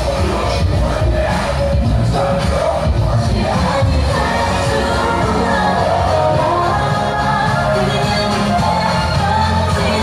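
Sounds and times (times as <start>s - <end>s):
crowd noise: 0.0s - 10.0s
loud dance music with bass: 0.0s - 10.0s.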